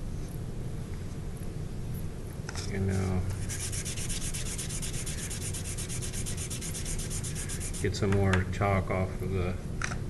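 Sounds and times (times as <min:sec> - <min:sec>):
chalk scratching on paper: 0:02.9 - 0:08.0.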